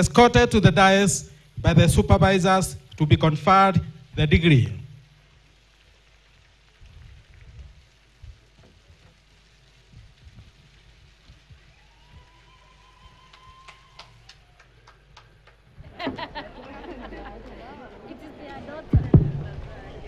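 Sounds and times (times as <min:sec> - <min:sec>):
low thumps and clicks: 0:18.9 - 0:19.7.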